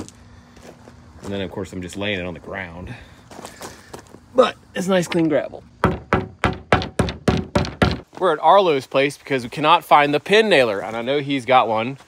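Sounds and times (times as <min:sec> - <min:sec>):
brush knocking on metal can: 0:05.8 - 0:08.0.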